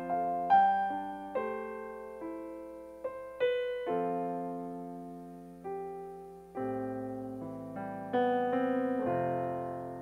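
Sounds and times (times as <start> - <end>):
soft piano chords: 0.0 - 10.0.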